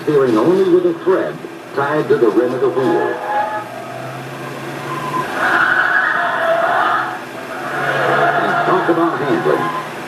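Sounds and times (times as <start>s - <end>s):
car engine: 0.0s - 10.0s
film projector playback: 0.0s - 10.0s.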